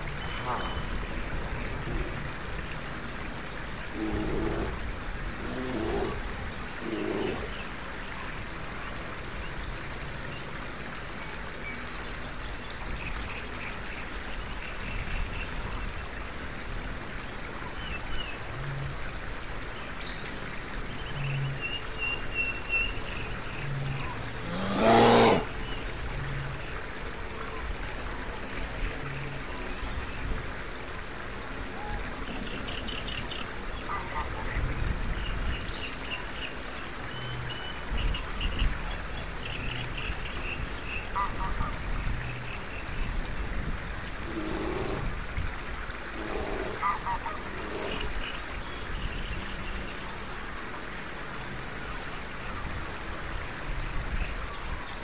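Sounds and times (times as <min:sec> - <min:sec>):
low croaking pulses: 0:00.0 - 0:08.0, 0:22.9 - 0:26.7, 0:41.2 - 0:49.8.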